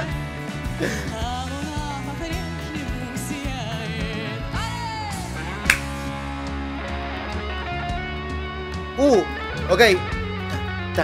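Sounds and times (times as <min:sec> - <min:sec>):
live band with guitar: 0:00.0 - 0:11.0
sharp percussive hit: 0:05.7 - 0:06.0.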